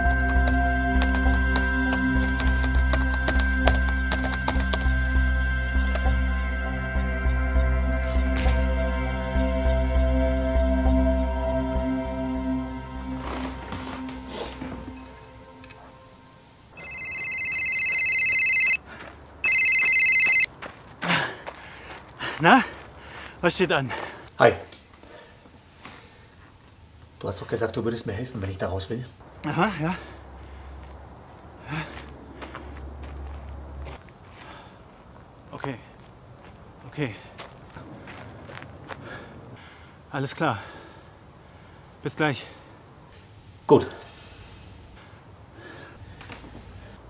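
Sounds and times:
footsteps on gravel: 13.2s - 15.0s, 18.8s - 19.3s, 20.5s - 24.2s, 30.8s - 39.3s
phone ringtone: 16.7s - 18.8s, 19.4s - 20.5s.

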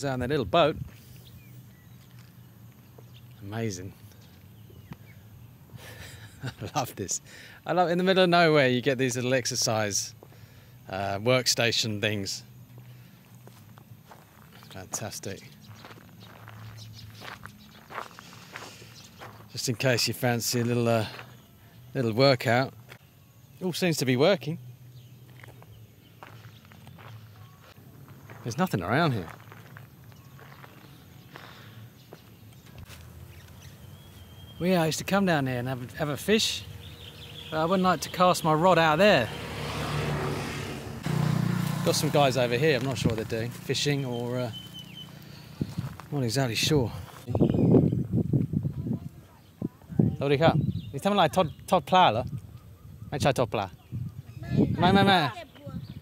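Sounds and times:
footsteps on gravel: 0.8s - 5.1s, 12.6s - 19.7s, 20.5s - 21.5s, 25.1s - 34.3s, 41.1s - 47.6s
vehicle engine running: 36.6s - 46.1s.

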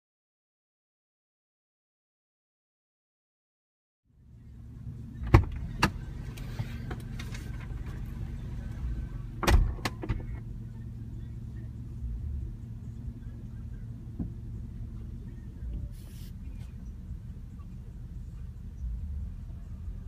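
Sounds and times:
car engine idling: 4.1s - 20.0s.

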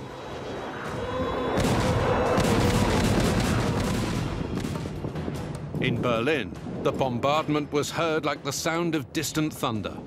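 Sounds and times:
artillery and rocket barrage: 1.5s - 6.7s.

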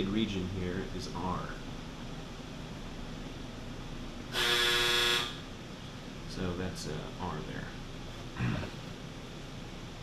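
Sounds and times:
low room hum: 0.0s - 10.0s
horn-like honk: 4.3s - 5.4s.

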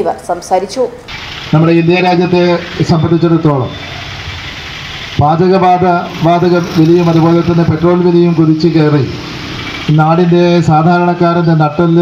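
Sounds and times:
steady background noise: 0.0s - 12.0s
man speaking over loudspeaker: 1.5s - 3.8s, 5.2s - 9.2s, 9.9s - 12.0s.

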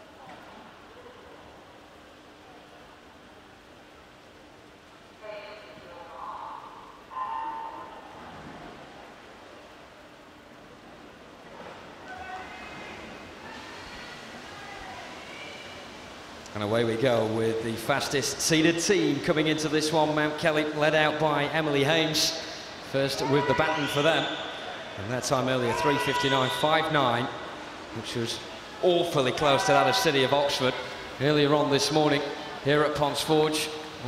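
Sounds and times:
faint steady hum: 0.0s - 34.0s
crowd noise: 11.1s - 34.0s.

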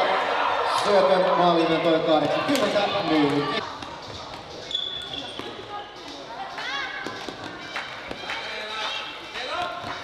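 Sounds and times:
players' voices: 0.3s - 3.9s
shoes squeaking on court floor: 2.2s - 6.2s.

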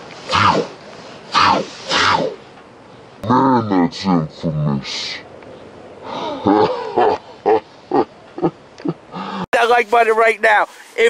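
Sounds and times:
man making short vocal sounds: 0.3s - 2.4s.

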